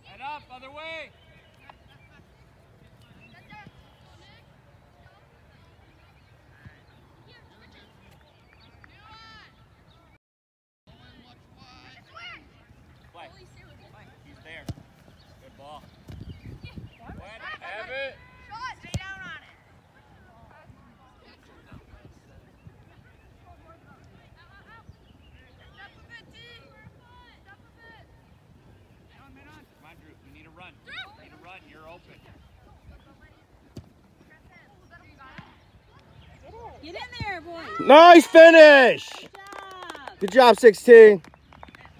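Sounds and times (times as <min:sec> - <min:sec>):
soccer ball kick: 0:14.5 - 0:17.3, 0:18.5 - 0:19.5, 0:33.7 - 0:34.1
distant shouting voices: 0:36.2 - 0:41.2
close voice shouting: 0:37.7 - 0:39.2.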